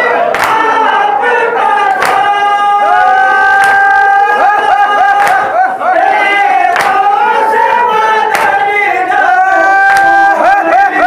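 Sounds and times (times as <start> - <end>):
men singing a lament: 0.0 - 11.0
hands striking chests: 6.7 - 7.1, 8.3 - 8.7.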